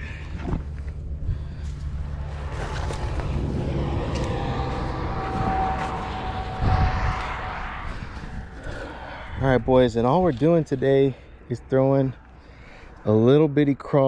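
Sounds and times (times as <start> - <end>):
vehicle passing by: 1.0 - 11.1.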